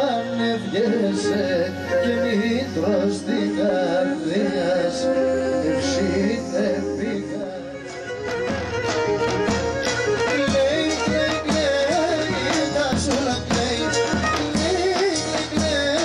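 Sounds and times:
man singing: 0.0 - 8.1, 10.2 - 16.0
bowed lyra melody: 0.0 - 11.2.

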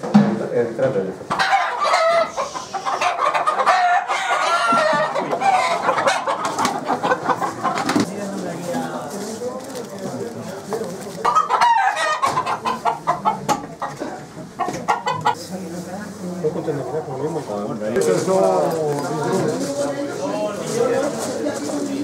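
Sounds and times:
roosters clucking and crowing: 1.1 - 22.0.

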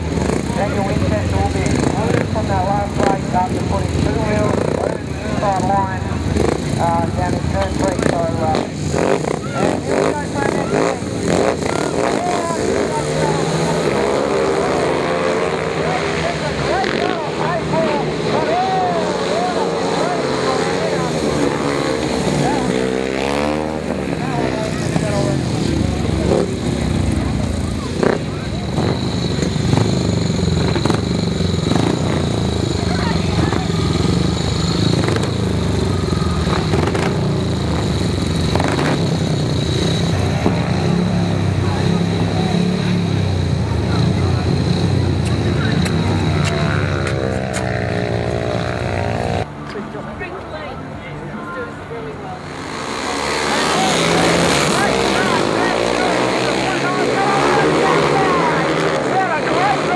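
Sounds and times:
motorcycle engines racing: 0.0 - 59.9.

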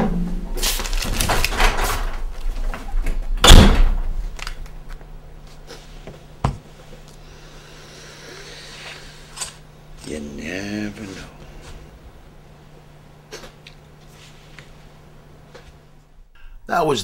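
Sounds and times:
low steady hum: 0.0 - 17.0
door slamming: 3.4 - 4.1.

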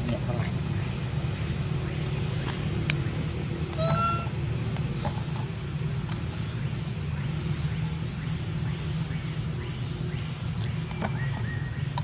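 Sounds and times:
baby monkey squealing: 3.8 - 4.3.

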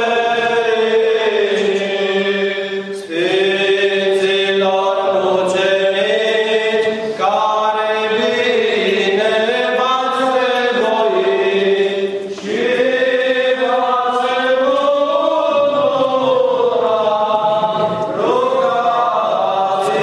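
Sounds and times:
voices chanting liturgically: 0.0 - 20.0.

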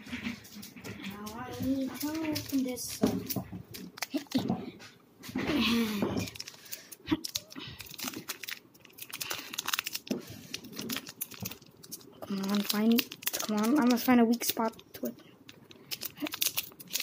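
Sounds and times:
person speaking: 0.9 - 3.4, 4.0 - 4.8, 12.2 - 15.4
foil wrapper crinkling: 1.2 - 4.5, 5.8 - 17.0.

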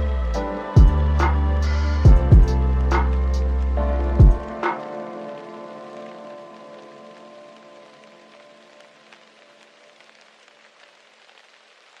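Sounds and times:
rain pattering: 0.0 - 12.0.

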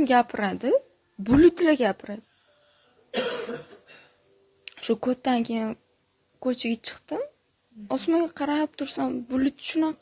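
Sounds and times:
woman coughing: 3.1 - 4.2.

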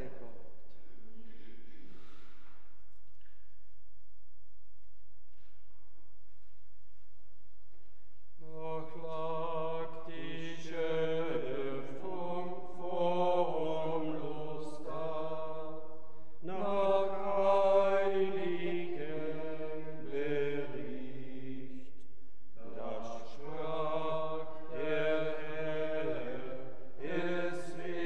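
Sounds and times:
person singing chant: 8.4 - 21.9, 22.6 - 28.0.

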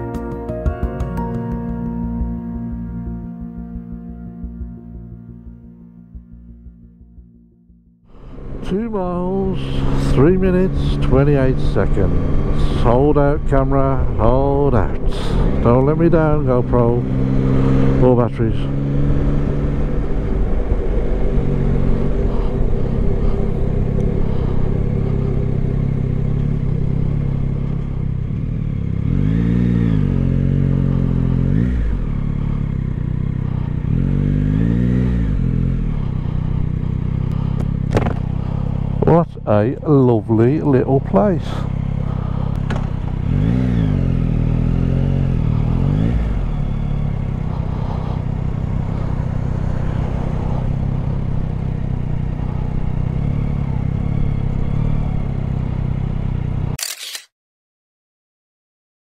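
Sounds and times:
motorcycle engine running: 0.0 - 56.8.

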